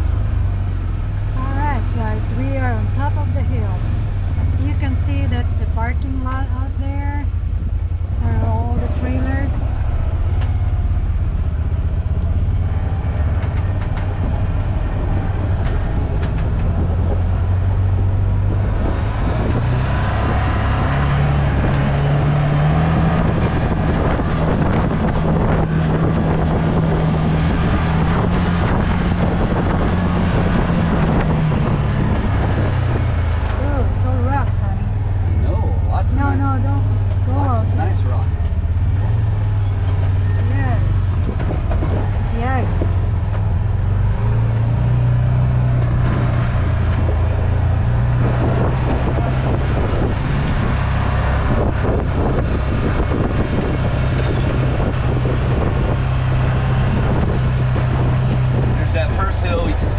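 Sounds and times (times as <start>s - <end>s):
off-road vehicle engine drone: 0.0s - 59.9s
tyres on dirt: 0.0s - 59.9s
wind noise: 0.0s - 59.9s.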